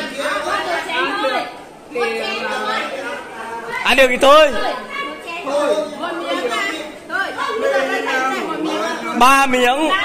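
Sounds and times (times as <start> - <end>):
group of people talking: 0.0 - 10.0.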